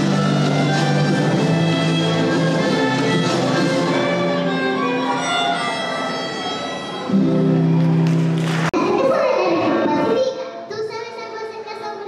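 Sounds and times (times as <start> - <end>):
child singing: 9.1 - 12.0.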